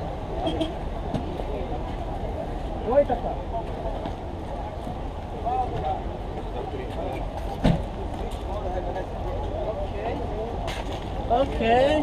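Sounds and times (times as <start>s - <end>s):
people's voices: 0.0s - 12.0s
road traffic rumble: 0.0s - 12.0s.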